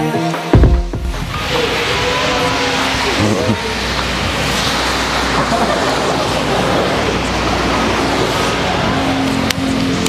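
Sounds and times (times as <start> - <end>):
faint voices: 1.1 - 10.0.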